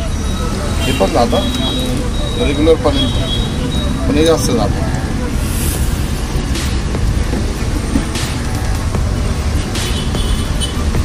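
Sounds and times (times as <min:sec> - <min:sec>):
music playing: 0:00.0 - 0:11.0
street traffic rumble: 0:00.0 - 0:11.0
short hisses: 0:05.4 - 0:06.8.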